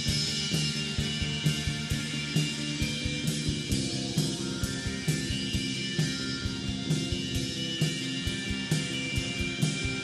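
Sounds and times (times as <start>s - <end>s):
drum kit steady beat: 0.0s - 10.0s
electric guitars sustained notes: 0.0s - 10.0s.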